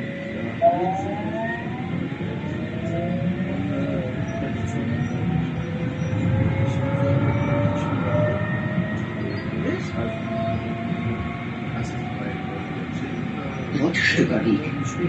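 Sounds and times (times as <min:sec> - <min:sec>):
tram wheels rumbling on rails: 0:00.0 - 0:15.0.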